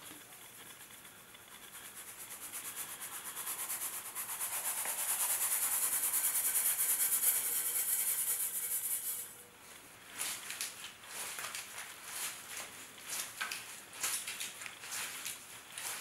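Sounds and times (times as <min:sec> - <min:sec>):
powder sifting from a shaken scoop: 0:00.0 - 0:09.4.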